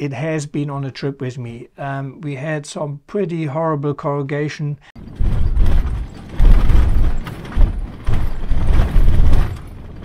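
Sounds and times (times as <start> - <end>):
rattles and knocks in cabin: 5.0 - 10.0
vehicle rumble on dirt track: 5.0 - 10.0.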